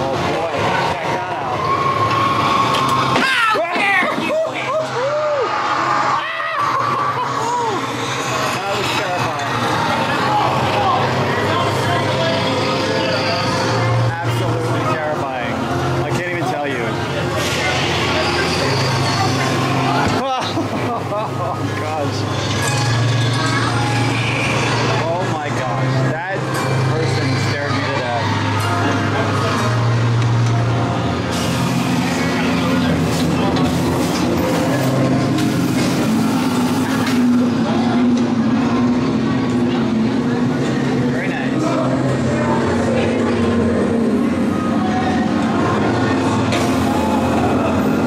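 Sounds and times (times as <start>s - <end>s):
low pulsing drone: 4.7s - 48.0s.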